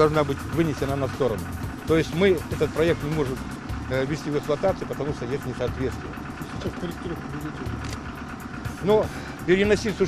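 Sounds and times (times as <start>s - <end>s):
engine idling hum: 0.0s - 10.0s.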